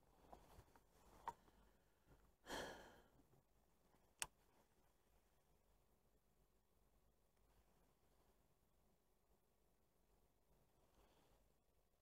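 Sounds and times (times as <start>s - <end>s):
person sighing: 2.4s - 3.1s.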